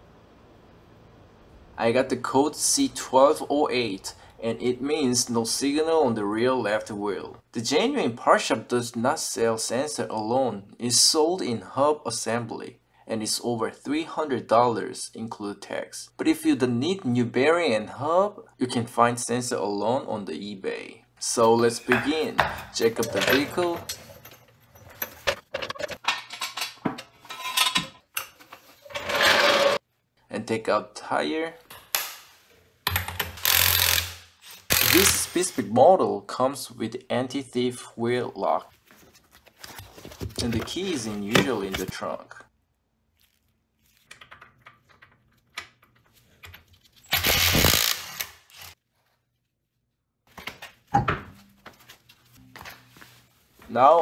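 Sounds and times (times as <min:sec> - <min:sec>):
impact wrench running: 0:33.3 - 0:35.3, 0:47.1 - 0:48.7.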